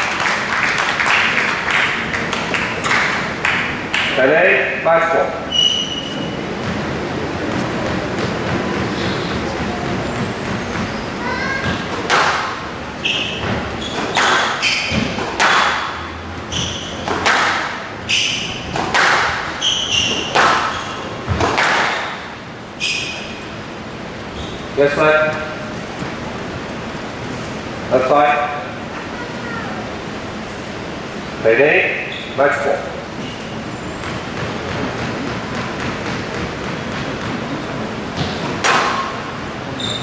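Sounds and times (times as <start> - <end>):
crowd chatter: 0.0 - 13.0, 23.6 - 31.4
shoes squeaking on court: 5.4 - 12.2, 12.9 - 15.4, 16.3 - 17.3, 18.0 - 22.2, 22.8 - 27.2, 33.1 - 38.5, 39.7 - 40.0
squash ball cracking off rackets: 11.6 - 12.6, 13.4 - 16.0, 16.6 - 22.3.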